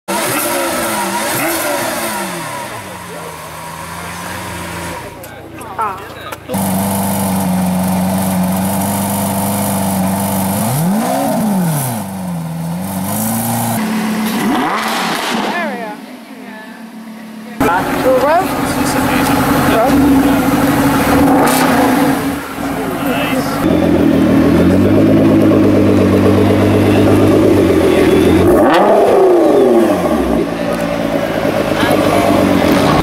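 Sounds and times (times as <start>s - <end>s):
car engine idling and revving: 0.1s - 33.0s.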